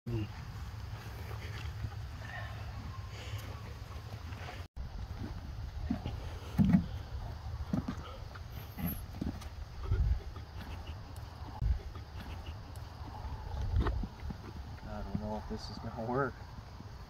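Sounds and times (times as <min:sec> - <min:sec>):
wind rumbling on microphone: 0:09.0 - 0:10.7, 0:13.0 - 0:15.6.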